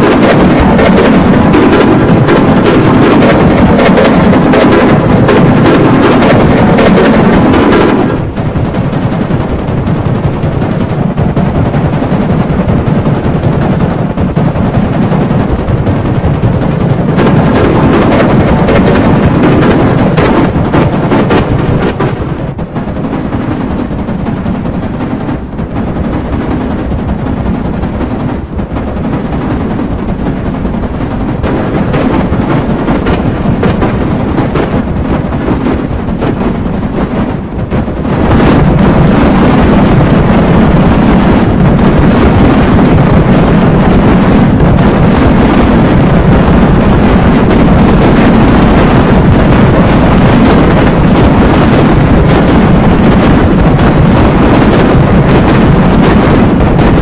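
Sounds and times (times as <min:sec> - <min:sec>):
harsh distorted crackling roar: 0:00.0 - 0:57.0.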